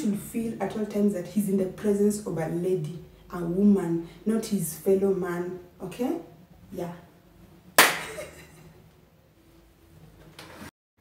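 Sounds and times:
hand clap: 7.8 - 8.3.

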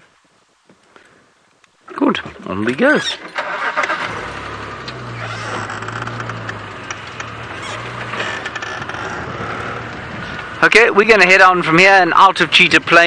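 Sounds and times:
road noise: 1.6 - 13.0
vehicle engine humming: 3.1 - 13.0
vehicle body rattle: 3.2 - 10.7.

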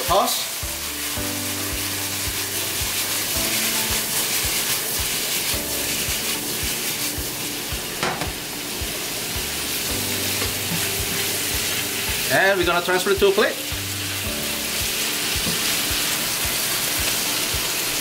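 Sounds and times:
meat sizzling in a wok: 0.0 - 18.0
soft background music with beat: 0.1 - 18.0
scrape in a wok: 0.8 - 7.2.

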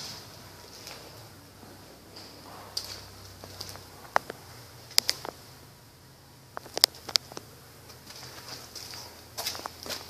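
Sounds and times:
footsteps on concrete: 0.0 - 5.3, 7.9 - 10.0.

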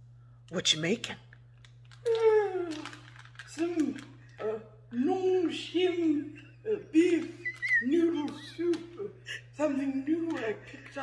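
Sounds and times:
plastic packet crinkling: 1.3 - 4.4, 7.2 - 8.9.

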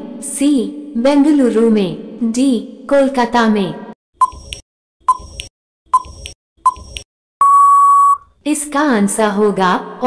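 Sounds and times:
short timer beeps: 4.2 - 8.3
long steady beep: 7.4 - 8.3.

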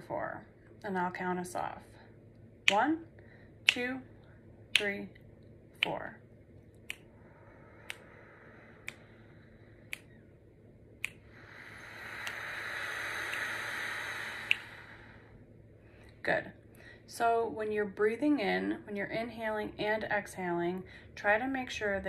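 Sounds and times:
finger snaps: 3.6 - 3.9, 4.7 - 5.0, 6.7 - 7.2, 7.8 - 9.2, 9.8 - 10.3, 11.0 - 14.9
person breathing in: 7.1 - 10.0, 11.2 - 16.0
person breathing out: 11.2 - 15.4.

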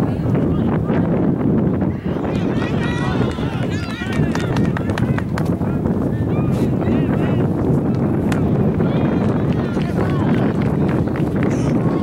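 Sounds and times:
wind rumbling on microphone: 0.0 - 12.0
players and spectators shouting: 1.8 - 5.3, 8.5 - 12.0.

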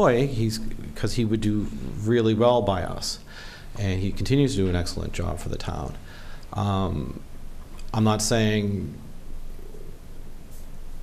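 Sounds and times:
even room hiss: 0.0 - 11.0.

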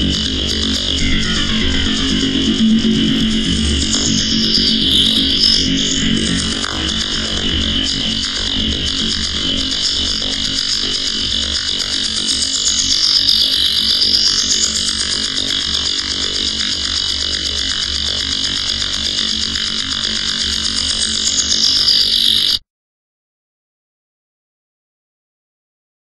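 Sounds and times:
harsh electronic feedback noise: 0.0 - 22.6.

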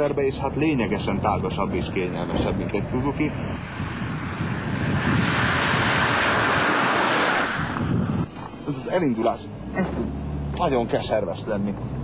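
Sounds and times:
car driving past: 1.0 - 8.3.

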